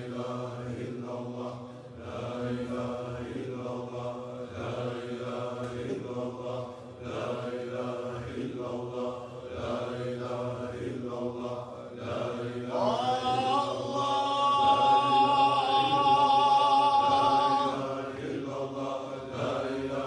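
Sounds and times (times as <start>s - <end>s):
group chanting: 0.0s - 20.0s.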